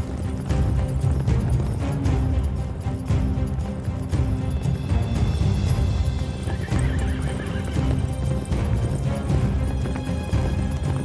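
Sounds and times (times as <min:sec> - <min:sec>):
background score music: 0:00.0 - 0:11.0
horse hoofbeats: 0:00.0 - 0:11.0
horse whinnying: 0:06.1 - 0:08.6.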